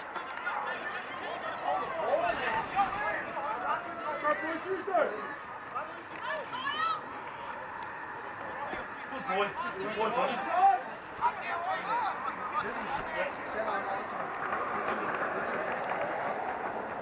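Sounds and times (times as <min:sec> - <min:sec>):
players shouting: 0:00.0 - 0:12.8.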